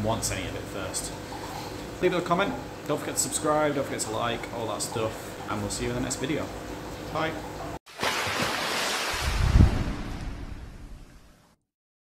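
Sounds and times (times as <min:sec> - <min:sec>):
deep boom: 0:09.3 - 0:11.1.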